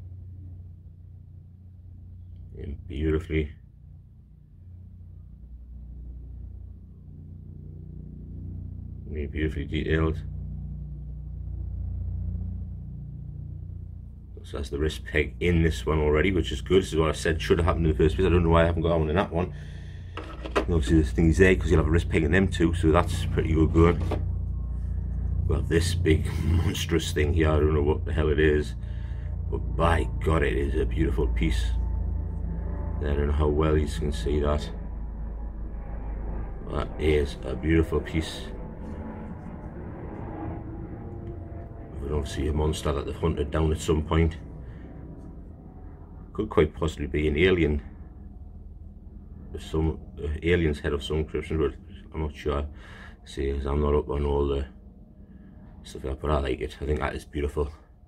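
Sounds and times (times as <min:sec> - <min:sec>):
low background rumble: 0:00.0 - 0:58.0
steady low hum: 0:00.0 - 0:58.0.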